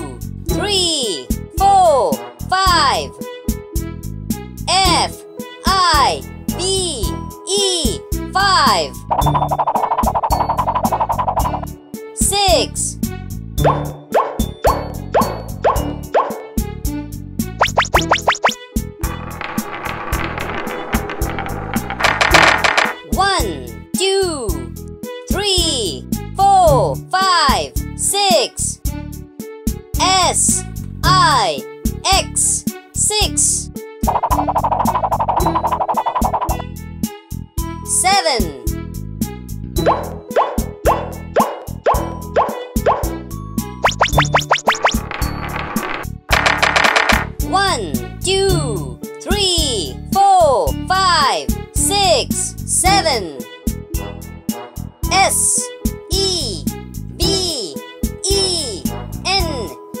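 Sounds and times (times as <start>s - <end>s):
children's background music: 0.0s - 60.0s
rising cartoon plops: 9.2s - 11.7s, 17.6s - 18.6s, 34.0s - 36.6s, 43.8s - 45.0s.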